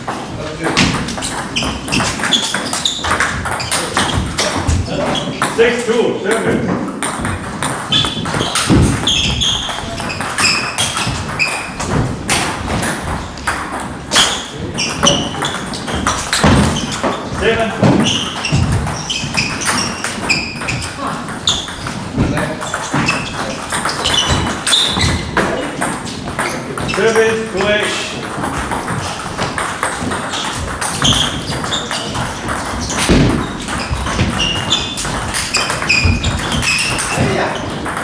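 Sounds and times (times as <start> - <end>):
people talking: 0.4 - 1.1, 3.7 - 6.8, 14.6 - 15.5, 17.3 - 18.2, 21.0 - 21.5, 22.2 - 24.3, 25.3 - 28.2, 31.1 - 32.5, 37.0 - 37.8.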